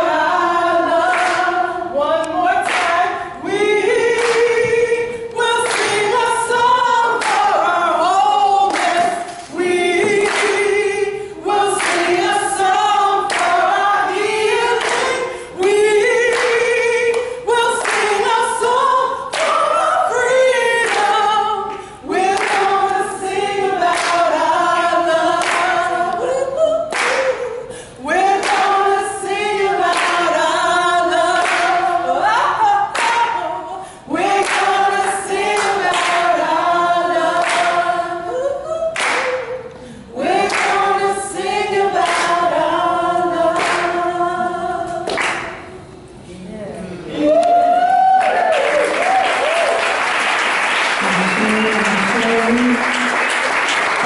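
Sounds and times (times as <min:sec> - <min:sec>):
men and women singing a cappella: 0:00.0 - 0:45.8, 0:51.0 - 0:53.4
hand claps: 0:01.1 - 0:01.5, 0:02.6 - 0:03.0, 0:04.2 - 0:04.5, 0:05.6 - 0:06.2, 0:07.2 - 0:07.5, 0:08.7 - 0:10.6, 0:11.8 - 0:12.2, 0:13.3 - 0:13.6, 0:14.8 - 0:18.2, 0:20.8 - 0:22.8, 0:23.9 - 0:24.2, 0:25.4 - 0:25.7, 0:26.9 - 0:27.4, 0:28.4 - 0:28.8, 0:29.9 - 0:30.2, 0:31.4 - 0:31.8, 0:32.9 - 0:33.3, 0:34.3 - 0:34.8, 0:35.6 - 0:36.3, 0:37.4 - 0:37.8, 0:39.0 - 0:39.6, 0:40.4 - 0:40.8, 0:42.0 - 0:42.4, 0:43.6 - 0:44.0, 0:45.1 - 0:45.7, 0:48.2 - 0:54.0.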